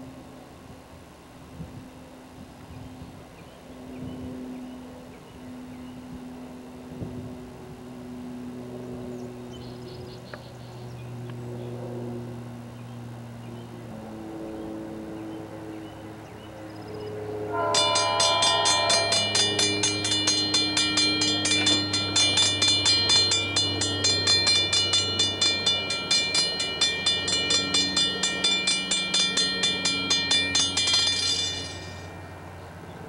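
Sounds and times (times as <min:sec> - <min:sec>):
diesel locomotive engine: 0:13.2 - 0:33.0
locomotive bell ringing: 0:17.5 - 0:32.9.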